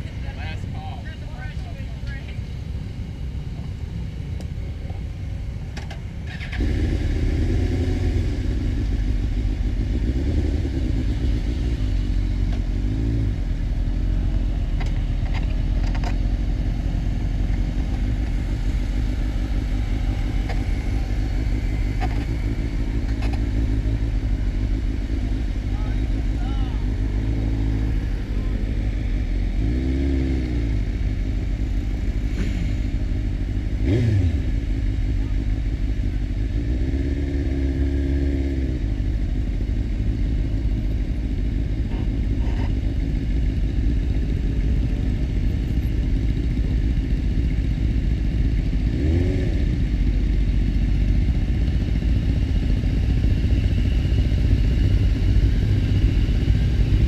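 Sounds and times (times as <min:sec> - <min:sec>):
motorcycle engine revving: 0:06.2 - 0:57.0.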